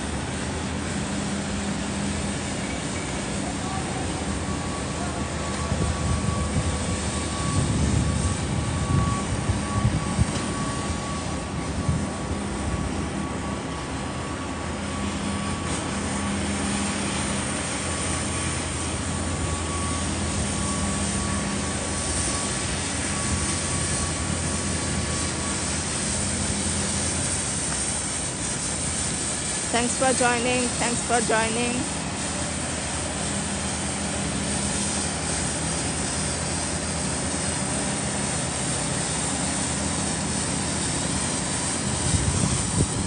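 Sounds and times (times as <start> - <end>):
faint high whine: 0.0 - 43.0
low mechanical hum: 0.0 - 43.0.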